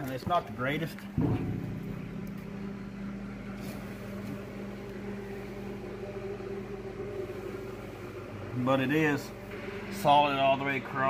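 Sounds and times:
steady machine hum: 0:00.0 - 0:11.0.

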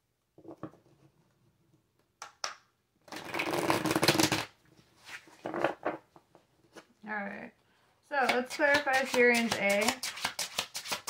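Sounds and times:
cards rustling: 0:08.4 - 0:11.0.

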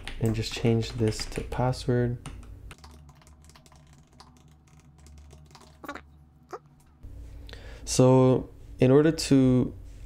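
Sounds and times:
computer keyboard typing: 0:02.2 - 0:06.0.

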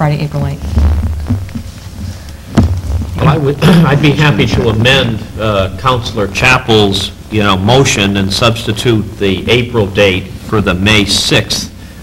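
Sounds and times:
low steady hum: 0:00.0 - 0:12.0
soft low thumps: 0:00.4 - 0:06.5
sharp knock on microphone: 0:00.7 - 0:03.2.

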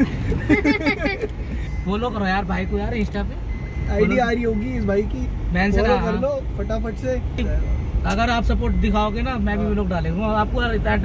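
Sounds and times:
men talking and laughing: 0:00.0 - 0:06.8
car engine and road rumble: 0:00.0 - 0:11.0.

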